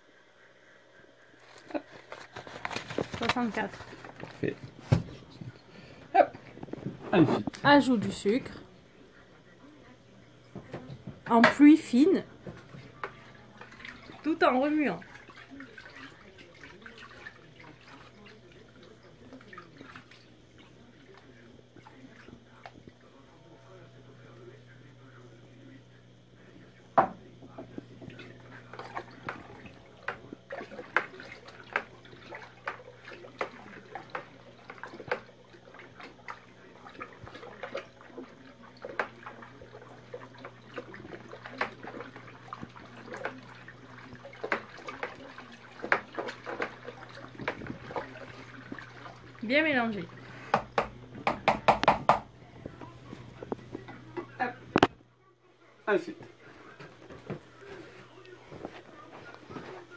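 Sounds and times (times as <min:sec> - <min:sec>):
liquid sloshing in a bucket: 0:01.4 - 0:08.7, 0:10.4 - 0:23.2, 0:27.6 - 0:51.4
knocks and slaps on bucket: 0:04.3 - 0:05.2, 0:50.5 - 0:52.3.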